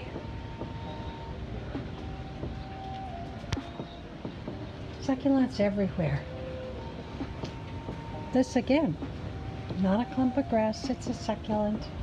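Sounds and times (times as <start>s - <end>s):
outdoor background rumble: 0.0s - 12.0s.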